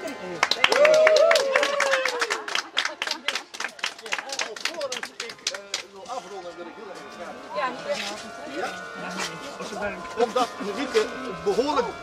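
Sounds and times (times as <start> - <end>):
crowd applauding: 0.0 - 6.0
people talking: 0.0 - 12.0.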